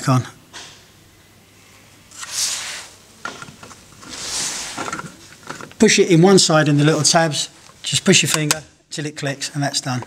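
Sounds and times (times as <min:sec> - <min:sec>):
plastic rubbing swishes: 0:03.8 - 0:05.8.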